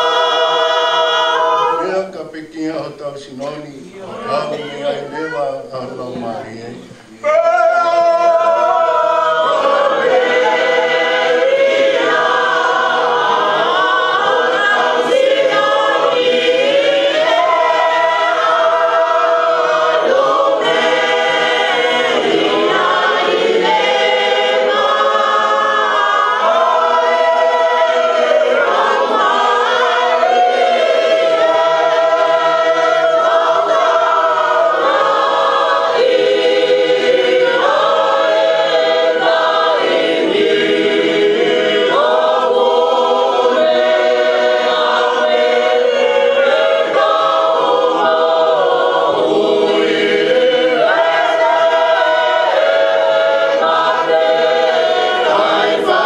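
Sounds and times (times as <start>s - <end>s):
congregation singing a hymn: 0.0s - 56.0s.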